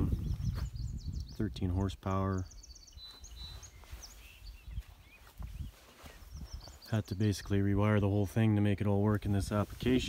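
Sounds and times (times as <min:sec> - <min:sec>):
faint high bird chirps: 0:00.0 - 0:07.6.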